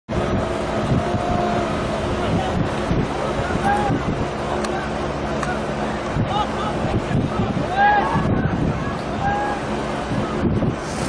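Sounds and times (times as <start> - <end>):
wind rumbling on microphone: 0.1 - 11.0
faint voices: 0.3 - 10.8.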